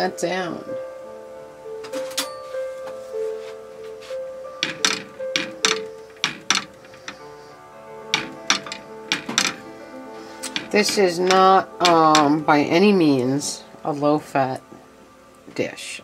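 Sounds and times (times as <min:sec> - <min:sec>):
background music: 0:00.0 - 0:16.0
spatula knocking on frying pan: 0:04.6 - 0:07.2, 0:08.1 - 0:09.7, 0:10.4 - 0:12.4.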